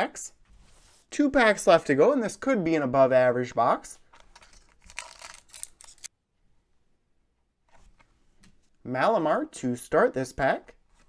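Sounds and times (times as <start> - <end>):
foil wrapper tearing and crinkling: 4.5 - 6.1.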